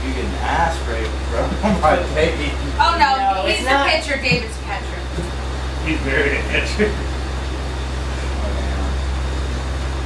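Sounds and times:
low mechanical hum: 0.0 - 10.0
faint voices: 0.1 - 7.1.

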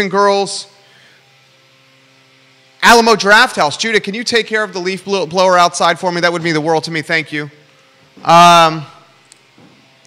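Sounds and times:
distant leaf blower drone: 0.0 - 10.0
man speaking: 2.8 - 7.6, 8.2 - 9.1.

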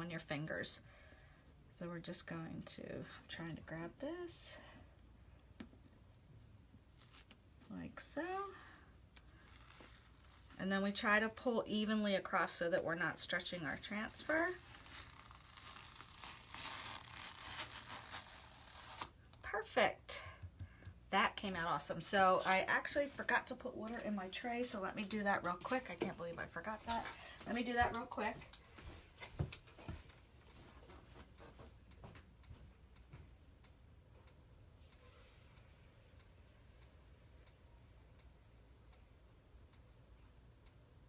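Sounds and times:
adhesive transfer peeling: 7.0 - 7.4, 9.0 - 10.5, 14.3 - 19.1.

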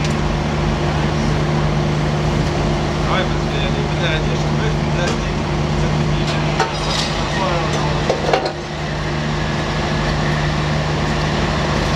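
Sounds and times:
steady mechanical hum: 0.0 - 11.9
metal clanks and scraping: 6.2 - 8.6.

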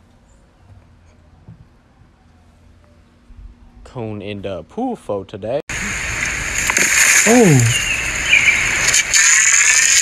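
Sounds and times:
outdoor noise hiss: 2.7 - 10.0.

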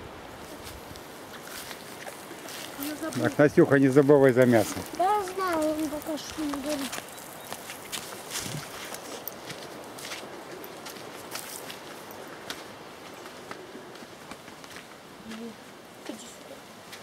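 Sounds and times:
faint steady hiss: 0.0 - 17.0
footsteps on dry grass: 0.1 - 15.5.

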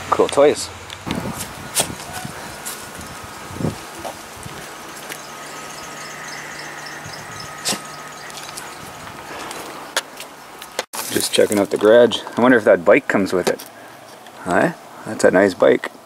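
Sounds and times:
outdoor background noise: 0.0 - 16.0
faint hum: 2.2 - 10.6.

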